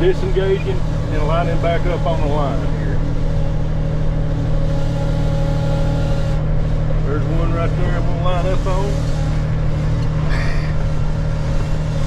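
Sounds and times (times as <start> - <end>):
tractor diesel engine droning: 0.0 - 12.0.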